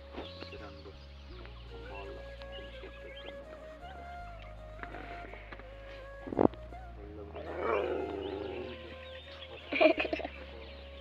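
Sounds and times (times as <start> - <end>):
dog howling: 7.3 - 9.0.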